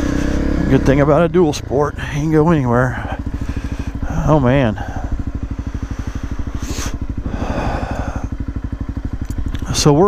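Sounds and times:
motorcycle engine at low revs: 0:00.0 - 0:10.0.

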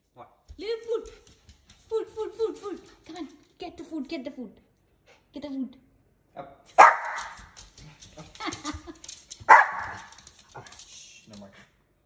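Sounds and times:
small dog barking: 0:06.8 - 0:07.4, 0:09.5 - 0:10.1.

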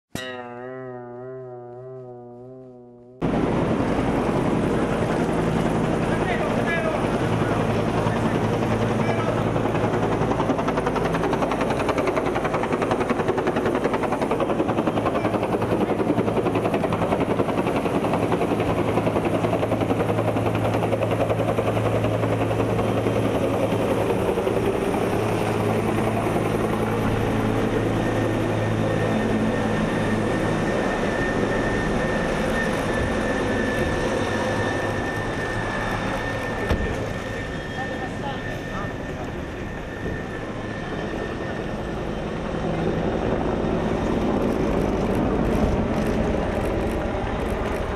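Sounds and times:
helicopter running: 0:00.4 - 0:47.9
voices: 0:35.6 - 0:39.8.

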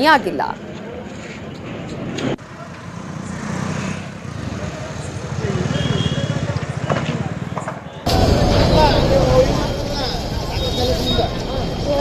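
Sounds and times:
faint voices: 0:06.3 - 0:12.0.

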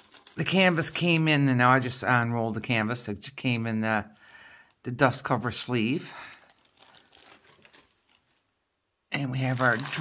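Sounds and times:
plastic sleeve crinkling: 0:00.0 - 0:01.6, 0:05.6 - 0:08.6, 0:09.2 - 0:10.0.

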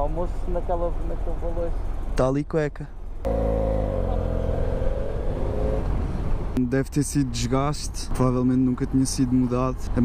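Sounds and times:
motorcycle engine pulling away: 0:03.3 - 0:06.5
wind rumble: 0:03.3 - 0:06.6.

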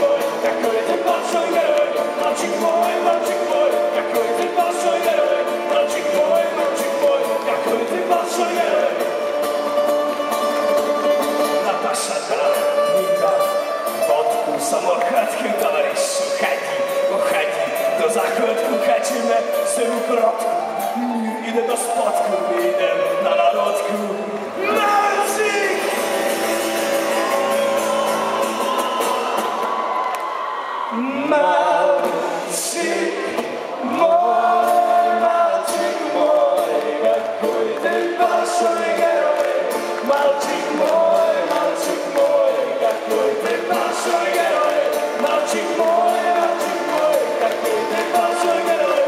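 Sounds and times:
audience singing along: 0:00.0 - 0:12.4, 0:24.5 - 0:49.0
person singing: 0:00.0 - 0:29.8, 0:30.9 - 0:49.0
strummed guitars: 0:00.0 - 0:49.0
voices: 0:11.4 - 0:29.7
audience whooping: 0:24.6 - 0:32.5.

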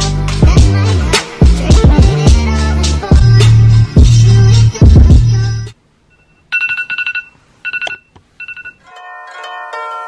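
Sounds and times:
hip hop music with heavy bass: 0:00.0 - 0:05.3
smartphone alarm beeps: 0:06.1 - 0:08.8.

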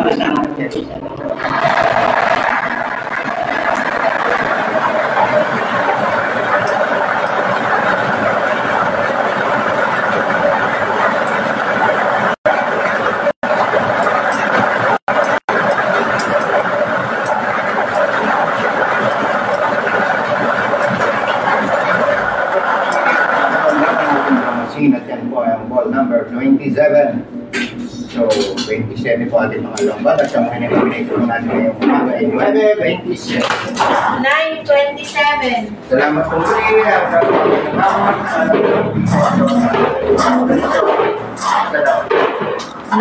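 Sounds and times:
lottery machine blower rushing: 0:00.0 - 0:25.2, 0:35.9 - 0:43.0.

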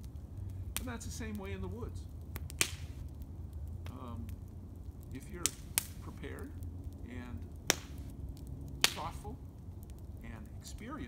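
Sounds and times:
campfire crackling: 0:00.0 - 0:11.0
low steady rumble: 0:00.0 - 0:11.0.

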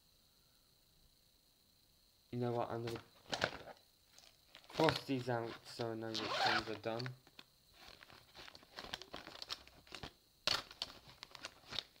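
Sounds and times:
paper crinkling: 0:02.9 - 0:05.9, 0:07.8 - 0:12.0.

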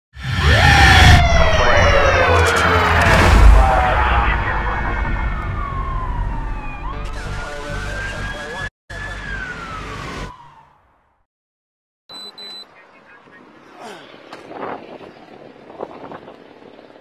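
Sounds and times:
police siren wailing: 0:00.3 - 0:11.0.

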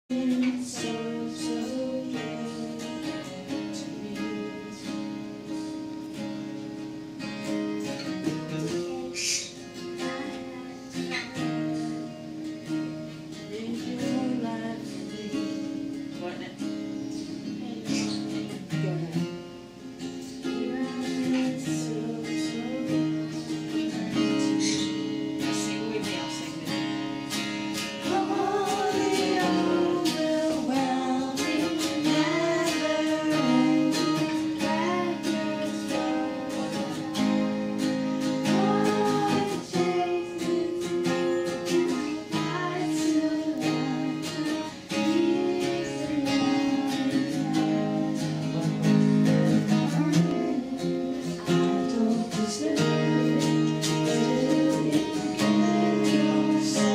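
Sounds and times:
person singing: 0:00.0 - 0:56.9
acoustic guitar strumming: 0:00.1 - 0:56.9.

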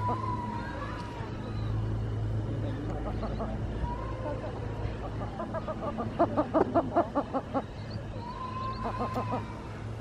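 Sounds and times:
low outdoor rumble: 0:00.0 - 0:10.0
rapid high bird calls: 0:05.0 - 0:09.6.

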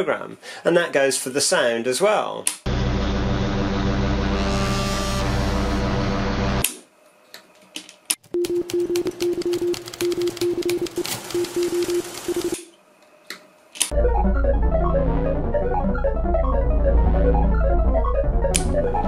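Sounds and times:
dense droning hum: 0:02.7 - 0:06.6
rapid irregular clicking: 0:08.5 - 0:12.6.

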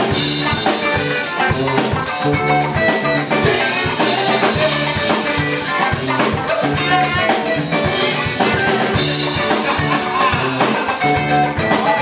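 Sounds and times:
rock band playing: 0:00.0 - 0:12.0.

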